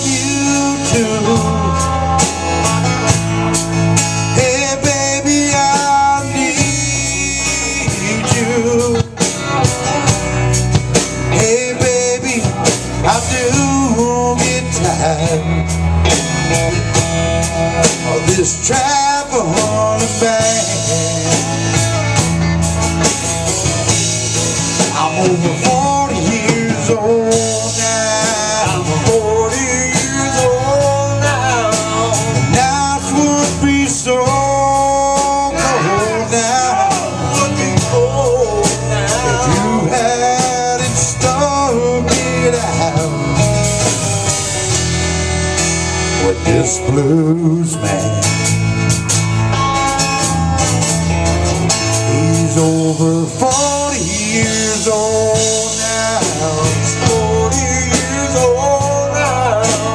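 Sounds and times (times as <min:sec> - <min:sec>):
blues band playing: 0:00.0 - 0:59.9
electric guitar bending notes: 0:00.0 - 0:59.9.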